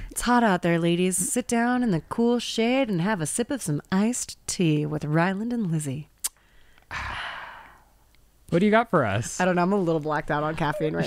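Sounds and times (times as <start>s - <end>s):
person sighing: 6.9s - 7.9s.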